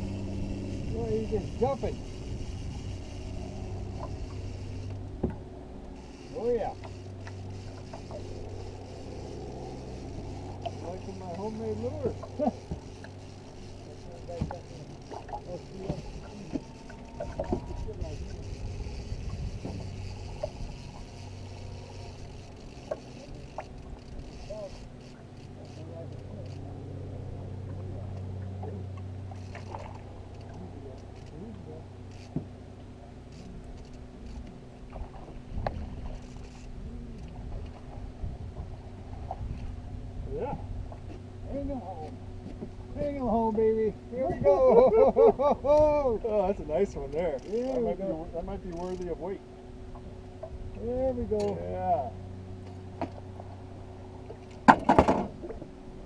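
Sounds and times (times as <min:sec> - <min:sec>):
small outboard motor humming: 0:00.0 - 0:56.0
faint voices: 0:10.8 - 0:19.0
sharp knocks on boat: 0:54.6 - 0:55.6.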